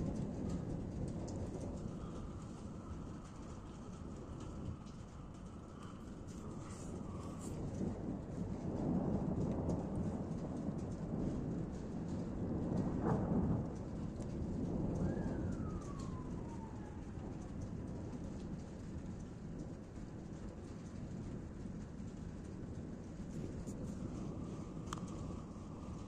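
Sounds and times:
thunder rumbling: 0.0 - 26.0.

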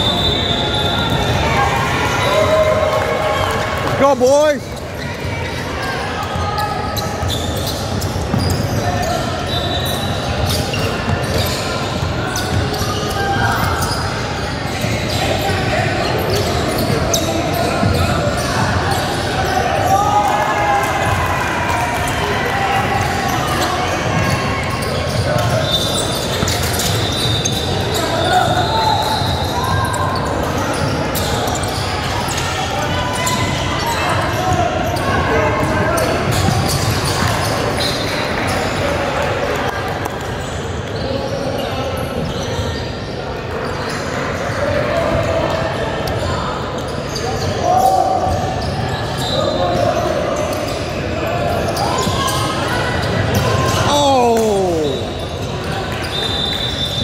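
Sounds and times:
shoes squeaking: 6.4 - 14.1
people calling out: 53.0 - 55.2.

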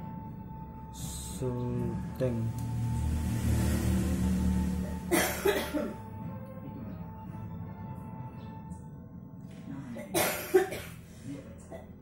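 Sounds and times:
person coughing: 5.1 - 6.0, 9.9 - 11.0.

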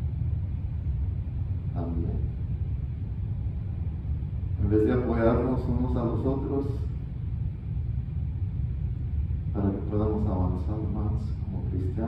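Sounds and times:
low rumble: 0.0 - 12.0.

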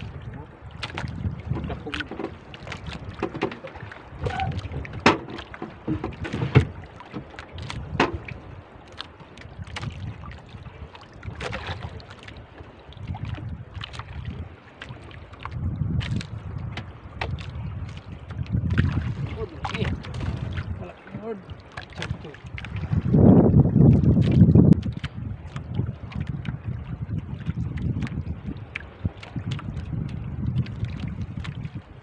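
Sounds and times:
water lapping around boat: 0.0 - 32.0
water splashes: 0.0 - 32.0
wind buffeting microphone: 0.0 - 32.0
sharp knocks: 5.0 - 6.8.

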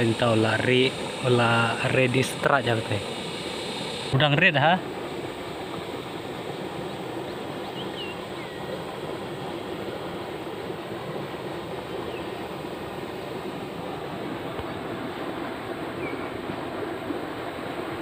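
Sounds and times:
steady rushing outdoor noise: 0.0 - 18.0.

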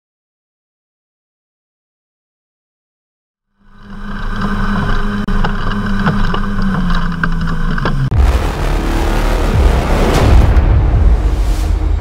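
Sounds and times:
crackling ticks: 3.8 - 8.1
loud noisy burst: 8.1 - 12.0.

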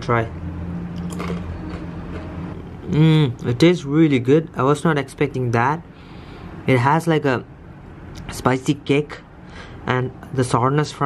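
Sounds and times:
steady low hum: 0.0 - 11.0
person crunching chips: 1.1 - 2.2.

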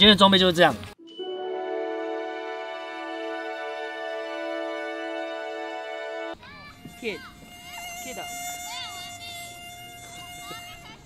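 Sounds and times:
night insects singing: 6.4 - 11.0.

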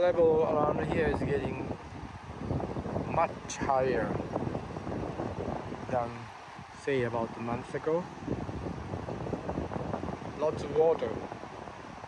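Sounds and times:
fast river rushing: 0.0 - 12.0
wind buffeting microphone: 0.0 - 12.0.

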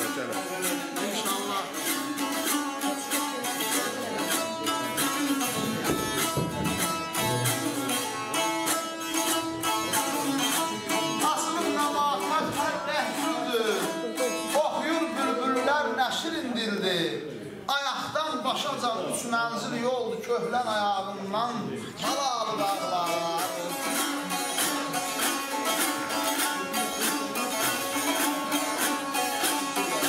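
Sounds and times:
long-necked lute strummed: 0.0 - 15.7, 22.0 - 30.0.

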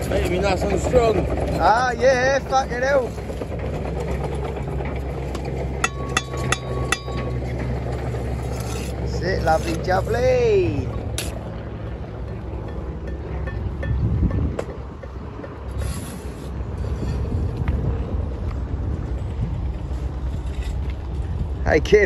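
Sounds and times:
low machinery engine drone: 0.0 - 22.0.

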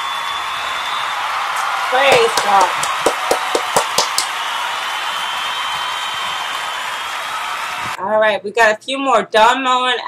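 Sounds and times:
hand claps: 1.1 - 7.5.

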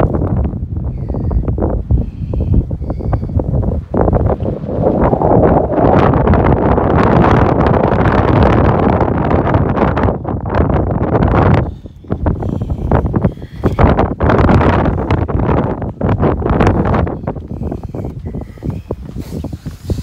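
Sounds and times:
gusty wind buffeting microphone: 0.0 - 20.0.

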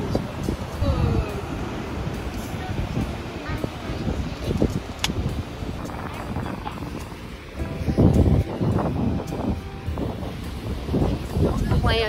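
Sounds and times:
surf washing on beach: 0.0 - 12.0
wind buffeting microphone: 0.0 - 12.0.

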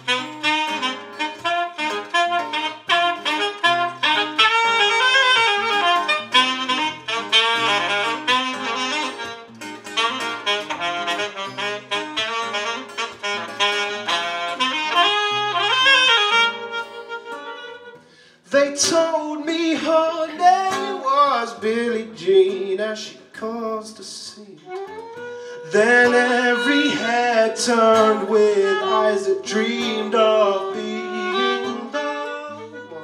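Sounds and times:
saxophone melody: 0.0 - 22.6, 24.6 - 33.0
strummed acoustic guitar: 0.0 - 23.8, 24.7 - 33.0.

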